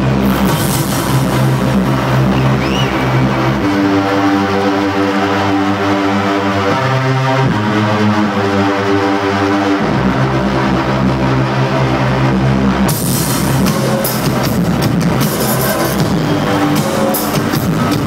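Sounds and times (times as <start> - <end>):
hard-hitting beat: 0.0 - 7.9, 12.8 - 18.0
droning synthesizer chords: 0.0 - 18.0.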